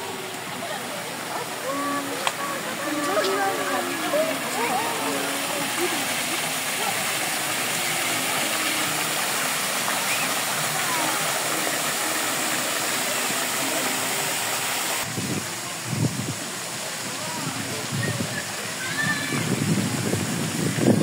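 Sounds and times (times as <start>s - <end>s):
fountain water splashing: 0.0s - 21.0s.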